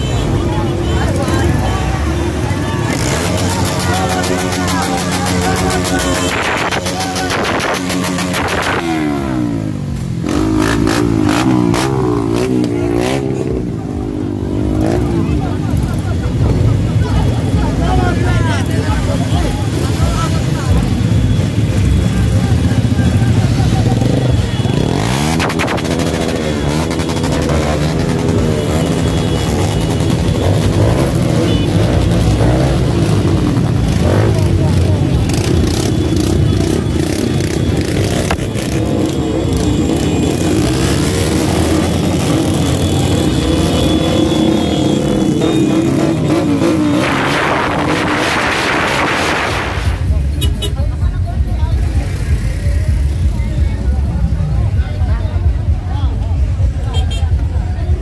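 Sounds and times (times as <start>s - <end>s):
motorcycle engines revving: 0.0s - 58.0s.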